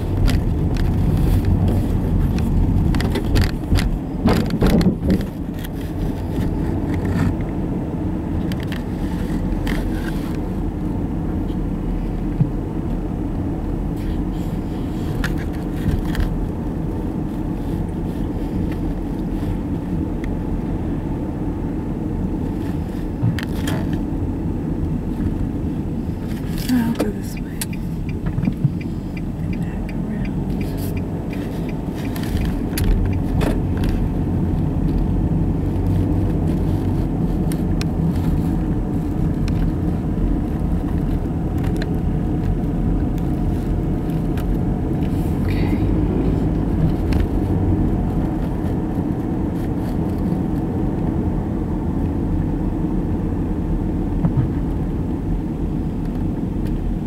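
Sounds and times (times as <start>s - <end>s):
car engine and tyres rumbling: 0.0s - 57.0s.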